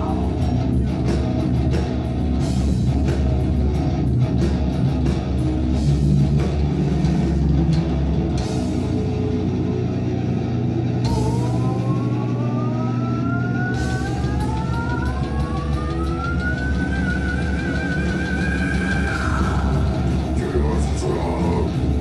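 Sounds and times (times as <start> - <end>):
heavy metal band droning chord: 0.0 - 22.0.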